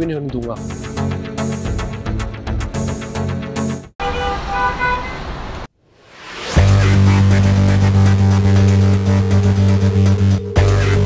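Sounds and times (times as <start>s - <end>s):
car horns tooting: 4.0s - 5.3s
road noise hum: 4.0s - 5.7s.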